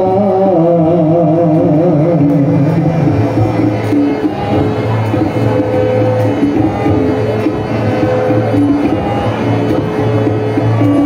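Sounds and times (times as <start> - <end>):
harmonium: 0.0 - 11.0
tabla drums: 0.0 - 11.0.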